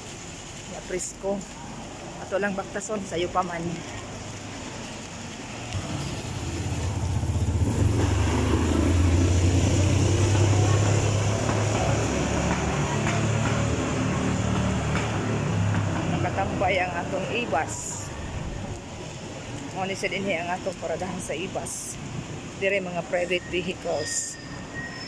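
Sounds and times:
vehicle engine humming: 3.6s - 19.8s.

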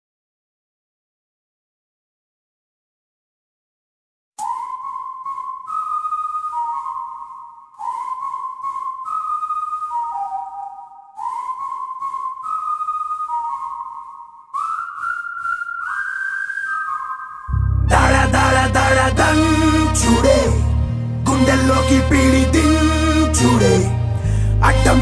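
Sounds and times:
whistled melody: 4.4s - 25.0s.

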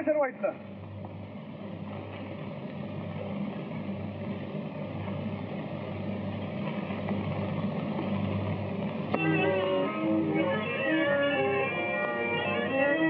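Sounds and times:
film soundtrack hiss: 0.0s - 13.0s
low hum: 0.0s - 13.0s.

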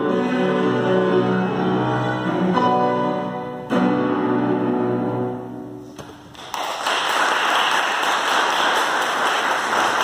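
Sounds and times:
audience applause: 6.3s - 10.0s.

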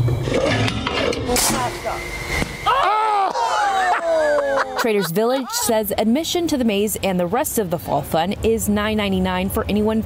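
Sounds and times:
people's voices: 3.3s - 8.6s.

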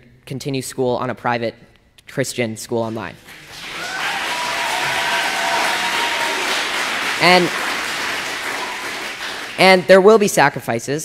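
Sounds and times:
audience applauding: 3.2s - 9.9s.

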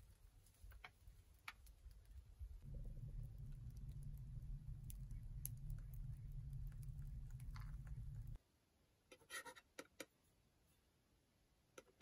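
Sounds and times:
wood fire rumbling: 0.0s - 8.4s.

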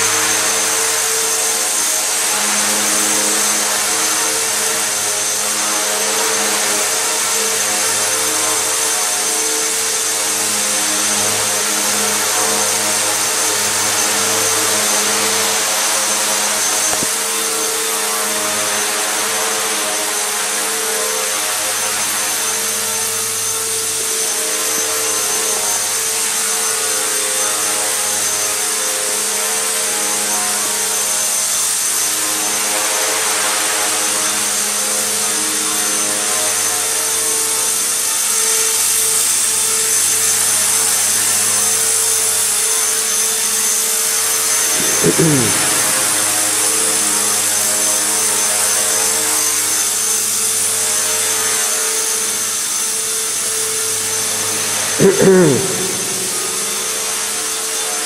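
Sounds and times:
rc helicopter motor buzzing: 0.0s - 58.0s.

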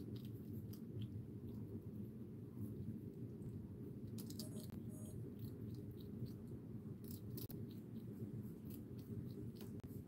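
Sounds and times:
hedgehog crunching food pellets: 0.0s - 2.2s, 4.0s - 10.0s
low background hum: 0.0s - 10.0s.

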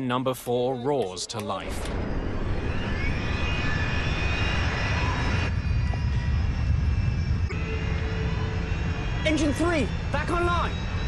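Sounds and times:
jet engine spooling up: 1.6s - 11.0s.

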